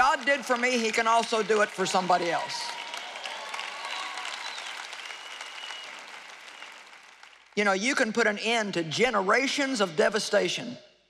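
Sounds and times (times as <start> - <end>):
audience applauding: 0.0 - 7.6.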